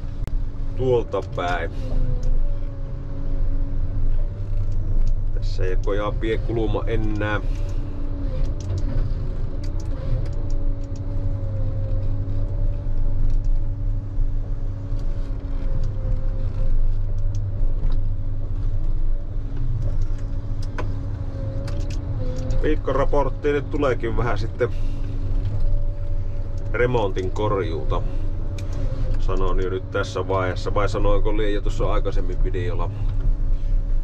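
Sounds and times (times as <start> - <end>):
engine and hydraulic drone: 0.0 - 34.0
steady whine: 0.0 - 34.0
faint clicks and knocks: 4.0 - 22.7.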